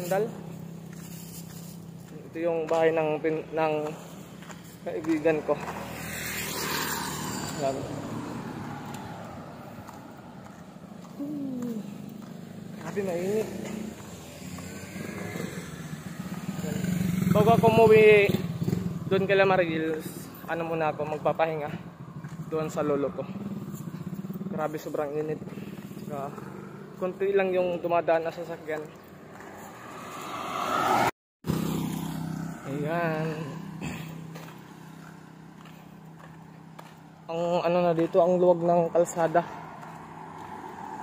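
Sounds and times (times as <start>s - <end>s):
footsteps on paved road: 0.0s - 31.0s, 31.6s - 41.0s
motorcycle engine approaching: 0.0s - 41.0s.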